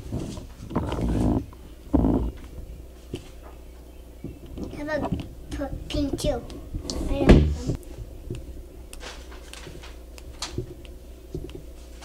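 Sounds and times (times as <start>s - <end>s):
child's wordless vocal sound: 4.8s - 7.8s.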